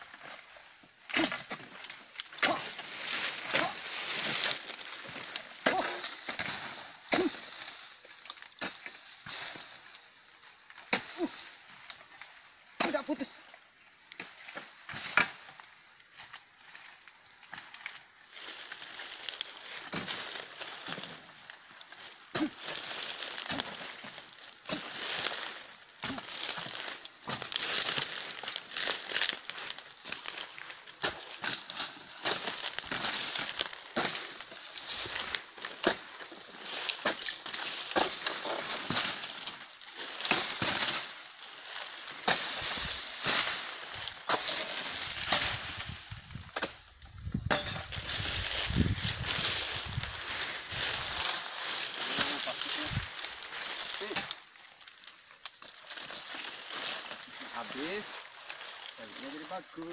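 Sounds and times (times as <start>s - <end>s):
palm fronds rustling and crackling: 0.0s - 59.9s.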